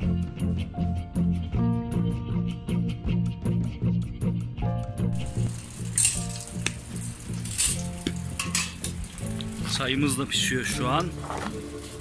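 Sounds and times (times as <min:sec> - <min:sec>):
background music: 0:00.0 - 0:12.0
wood fire crackling and hissing: 0:05.1 - 0:12.0.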